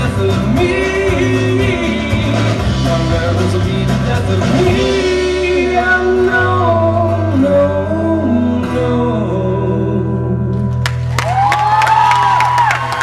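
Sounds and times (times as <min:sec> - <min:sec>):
person singing: 0:00.0 - 0:10.8
electric bass low notes: 0:00.0 - 0:11.5
live rock band playing: 0:00.0 - 0:13.0.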